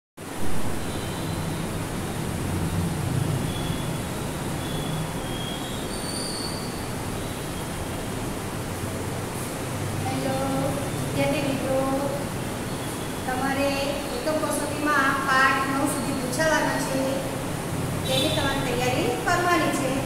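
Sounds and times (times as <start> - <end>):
rushing background noise: 0.2 - 20.0.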